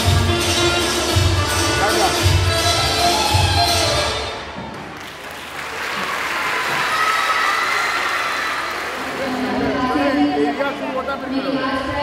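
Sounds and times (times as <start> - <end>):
music: 0.0 - 4.8
audience applause: 4.7 - 9.8
woman speaking over loudspeaker: 9.2 - 12.0.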